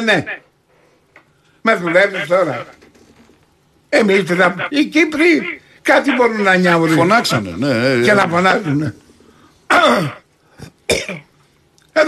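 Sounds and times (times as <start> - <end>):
throat clearing: 9.7 - 11.3.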